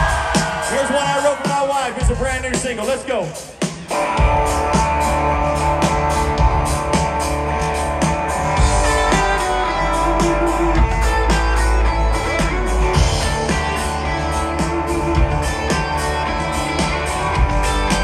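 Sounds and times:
country band playing: 0.0s - 18.0s.

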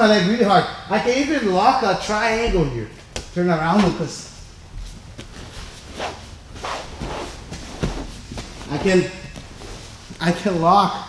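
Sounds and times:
bodies sliding over mat: 4.7s - 10.6s
cloth scuffing on foam mat: 4.8s - 10.3s.

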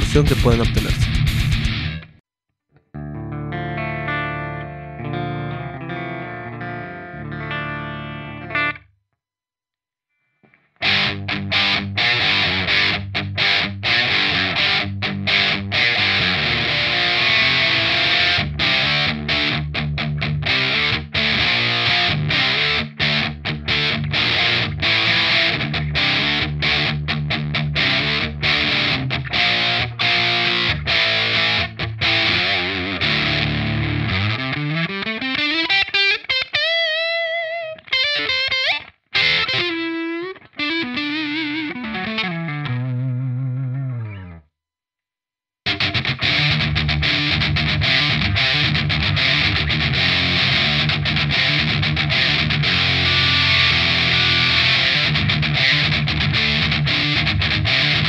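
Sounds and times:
heavy distorted metal guitar riffing: 0.0s - 2.1s, 10.8s - 35.0s, 45.7s - 58.0s
electric guitar ringing notes: 3.0s - 8.8s, 10.8s - 44.4s, 45.7s - 58.0s.

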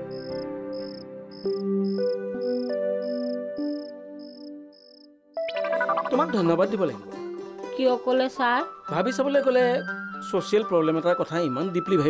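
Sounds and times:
soft music with held notes: 0.0s - 4.8s, 5.4s - 12.0s
cricket chirping: 0.0s - 6.4s.

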